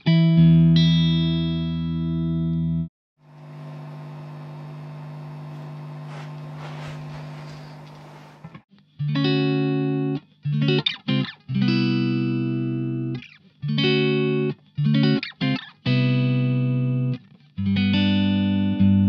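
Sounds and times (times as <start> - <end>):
clean electric guitar chords: 9.0 - 19.0.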